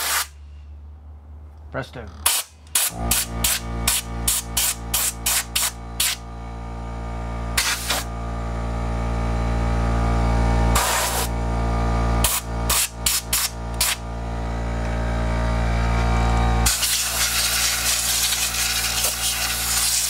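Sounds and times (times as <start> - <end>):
air blow gun bursts: 0.0 - 0.4, 2.2 - 6.2, 7.6 - 8.1, 10.7 - 11.3, 12.2 - 14.0, 16.6 - 20.0
air compressor motor hum: 2.2 - 20.0.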